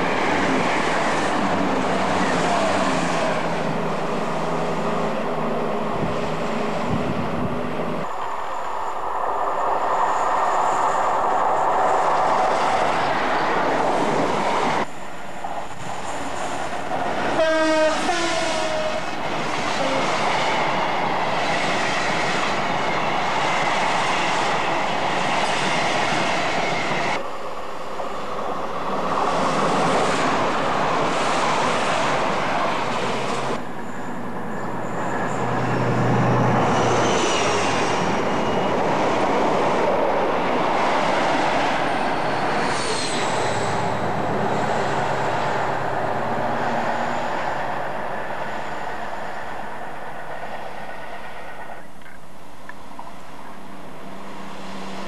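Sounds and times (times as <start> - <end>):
train wheels rushing on rails: 0.0 - 55.0
train horn: 17.4 - 19.1, 19.8 - 20.1.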